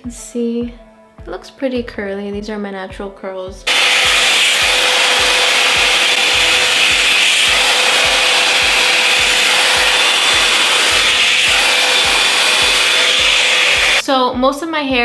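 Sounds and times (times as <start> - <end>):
hot-air brush blowing air: 3.7 - 14.0
thin steady whine: 3.7 - 14.0.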